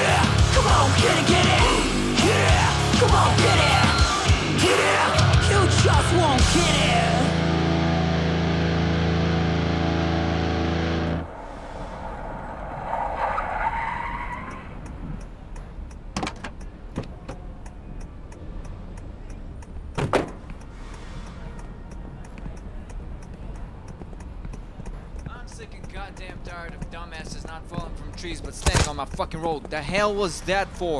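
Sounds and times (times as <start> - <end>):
heavy metal music: 0.0 - 12.4
car screech: 10.8 - 15.3
sharp knocks: 20.0 - 20.5.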